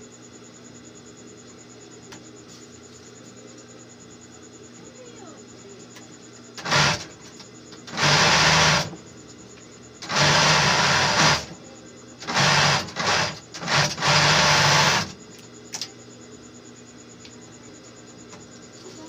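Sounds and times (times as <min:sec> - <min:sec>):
sewing machine stitching fabric: 0:06.6 - 0:07.1, 0:07.8 - 0:09.0, 0:10.0 - 0:11.5, 0:12.2 - 0:15.2.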